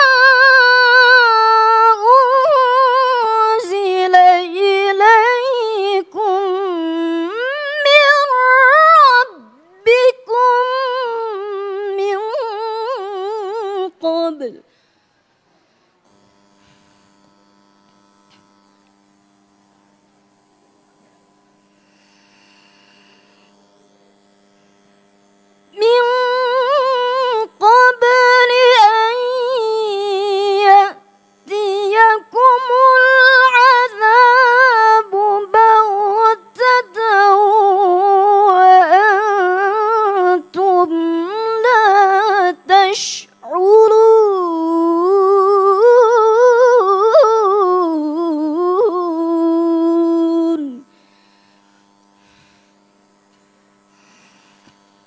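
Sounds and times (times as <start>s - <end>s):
woman reciting melodically: 0.0s - 14.7s, 25.8s - 50.9s
faint electrical mains hum: 0.0s - 55.0s.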